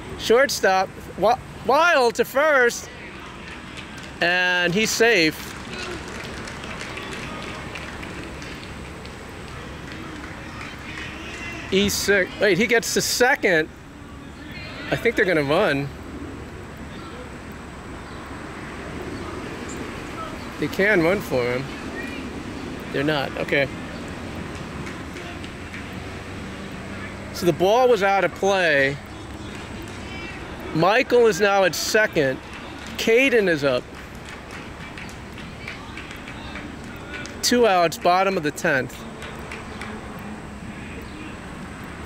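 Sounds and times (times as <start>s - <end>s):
faint distant voices: 0.0s - 41.8s.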